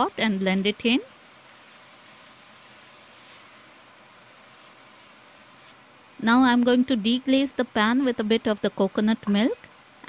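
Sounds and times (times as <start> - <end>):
meat sizzling in a pot: 0.0 - 8.9.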